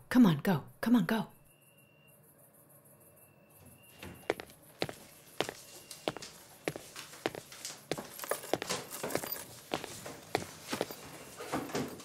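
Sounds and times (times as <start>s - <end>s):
footsteps walking: 4.2s - 12.0s.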